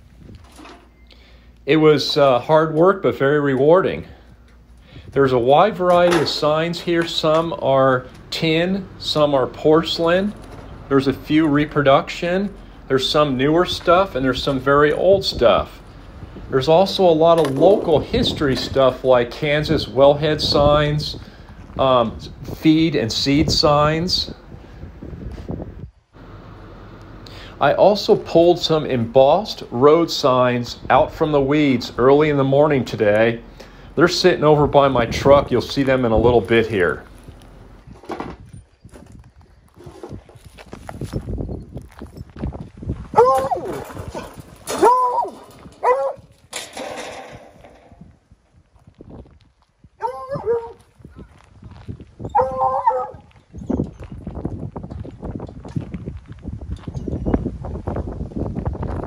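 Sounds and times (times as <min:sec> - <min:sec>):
wind rumbling on microphone: 0:00.0 - 0:00.6, 0:03.6 - 0:59.0
dog whining: 0:43.2 - 0:43.8, 0:44.7 - 0:46.2, 0:50.0 - 0:50.8, 0:52.3 - 0:53.3.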